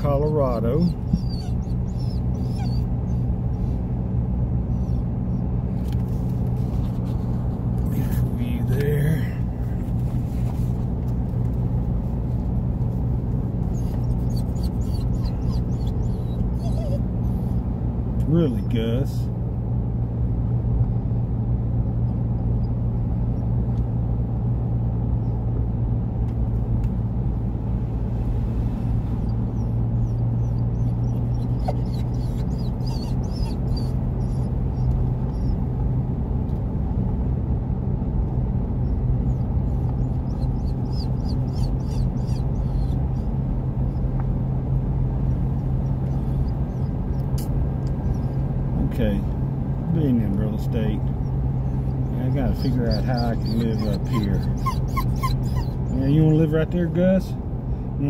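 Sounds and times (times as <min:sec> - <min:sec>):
car road and engine noise: 0:00.0 - 0:58.0.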